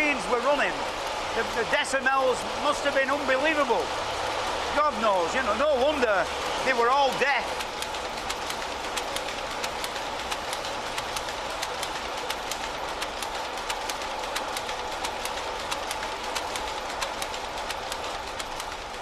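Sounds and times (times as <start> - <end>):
line shafting and belts running: 0.0 - 19.0
power looms clattering: 0.0 - 19.0.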